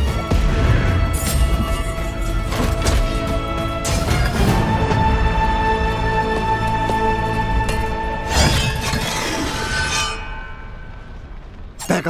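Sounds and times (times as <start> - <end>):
film score music with held tones: 0.0 - 12.0.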